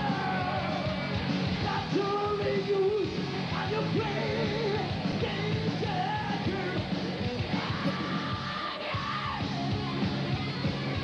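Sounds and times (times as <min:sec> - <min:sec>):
heavy metal band playing live: 0:00.0 - 0:11.0
high yelled lead vocal: 0:00.0 - 0:11.0.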